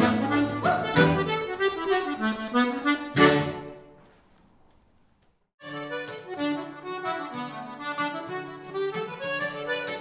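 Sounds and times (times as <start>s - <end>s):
accordion playing a folk tune: 0.0s - 4.0s, 5.6s - 10.0s.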